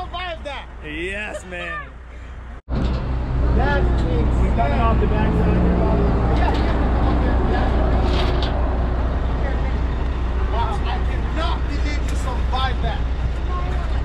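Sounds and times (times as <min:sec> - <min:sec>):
people talking: 0:00.0 - 0:02.0, 0:03.6 - 0:08.0, 0:10.5 - 0:14.0
diesel truck engine idling: 0:08.6 - 0:14.0.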